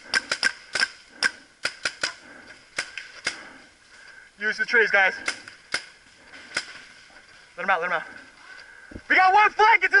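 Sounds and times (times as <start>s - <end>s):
paintball marker shots: 0.1s - 2.2s, 5.2s - 6.8s.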